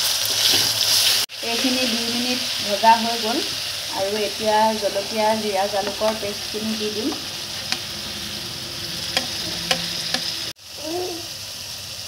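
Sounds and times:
paste sizzling in hot oil: 0:00.0 - 0:12.0
spatula clicking against pan: 0:09.1 - 0:10.4.

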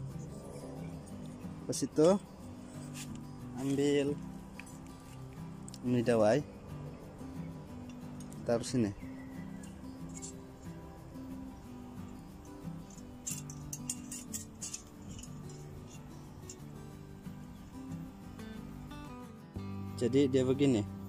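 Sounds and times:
background music with low notes: 0:00.0 - 0:21.0
light metallic clinks of a trap: 0:07.8 - 0:10.8, 0:12.0 - 0:16.9.

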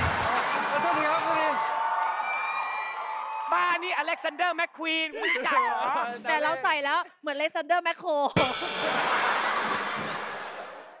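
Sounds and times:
studio audience crowd noise: 0:00.0 - 0:06.1, 0:08.4 - 0:11.0.

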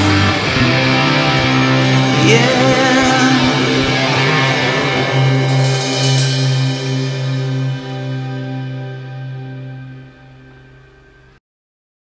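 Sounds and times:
rock band playing live: 0:00.0 - 0:11.3
electric guitar chord ringing: 0:00.0 - 0:11.4.

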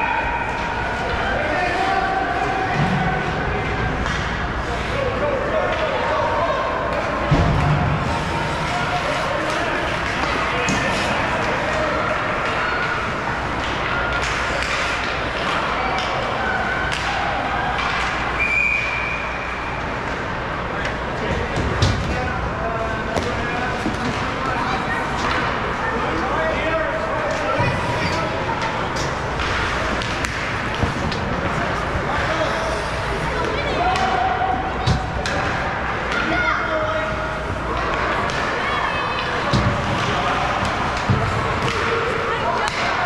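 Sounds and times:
people talking and calling out: 0:00.0 - 0:43.0
hockey sticks and puck knocking: 0:06.9 - 0:16.3, 0:28.6 - 0:32.4, 0:39.2 - 0:43.0
short whistle blast: 0:18.4 - 0:19.4.

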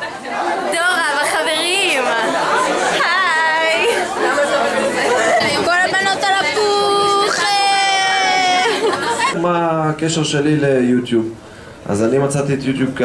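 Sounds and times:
background chatter: 0:00.0 - 0:13.0
young women talking: 0:00.6 - 0:09.3.

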